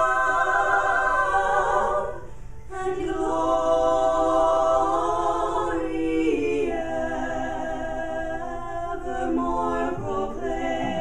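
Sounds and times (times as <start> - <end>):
female trio singing in harmony: 0.0 - 11.0.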